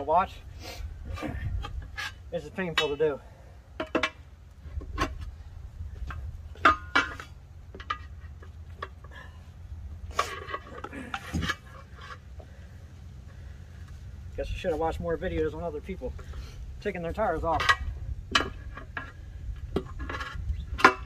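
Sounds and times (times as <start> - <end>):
tire iron clanking on steel rim: 1.1 - 9.4, 10.0 - 12.7, 15.4 - 21.0.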